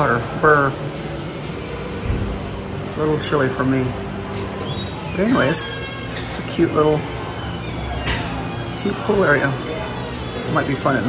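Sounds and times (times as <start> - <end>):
indoor background hum: 0.0 - 11.0.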